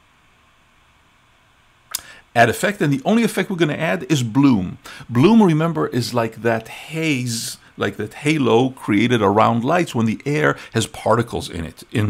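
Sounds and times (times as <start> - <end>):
short sharp click: 1.9 - 2.1.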